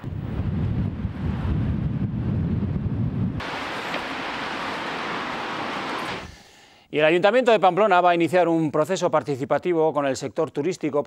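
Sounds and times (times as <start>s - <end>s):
wind buffeting microphone: 0.0s - 6.3s.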